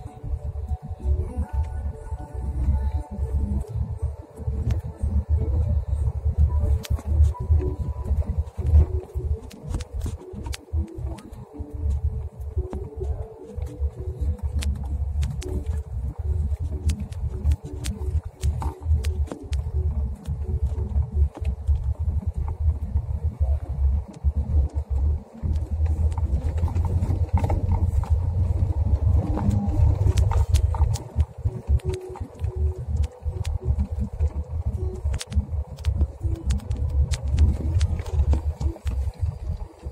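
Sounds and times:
engine and tyre rumble: 0.0 - 39.9
car driving on rough concrete: 2.6 - 39.9.

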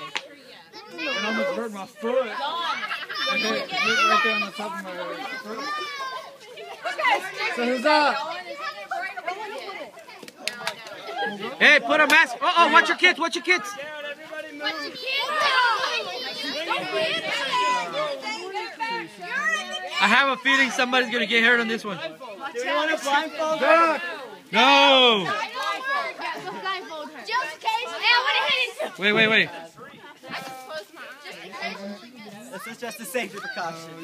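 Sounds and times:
adult voices: 0.0 - 34.0
children calling and chattering: 0.0 - 34.0.

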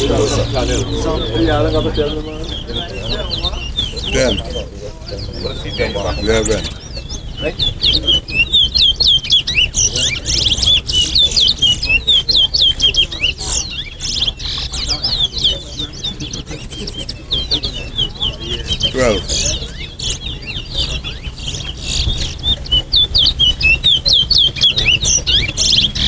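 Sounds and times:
crowd murmuring: 0.0 - 26.0
finches singing whistled notes: 0.0 - 26.0.

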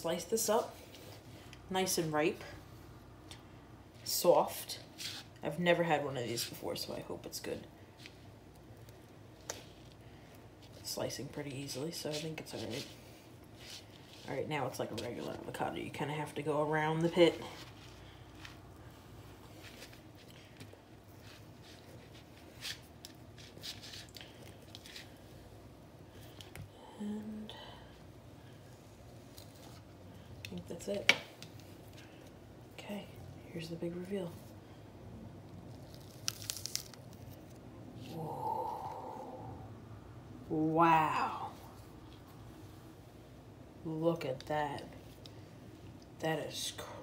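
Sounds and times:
steady hummed tone: 0.0 - 47.0
avocado tearing apart: 35.4 - 38.9.

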